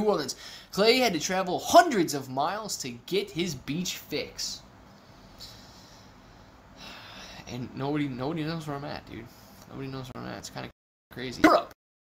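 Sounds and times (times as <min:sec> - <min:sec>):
man breathing through nose: 0:05.0 - 0:07.4.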